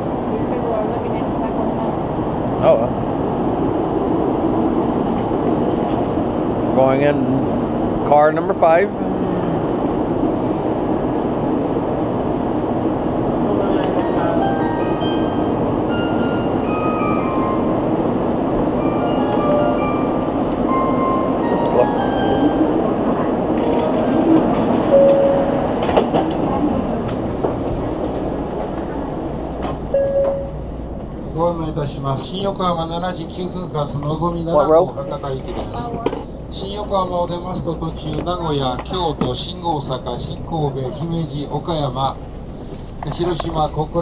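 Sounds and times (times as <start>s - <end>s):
train rumbling hum: 0.0s - 44.0s
electronic chime melody: 30.0s - 30.6s.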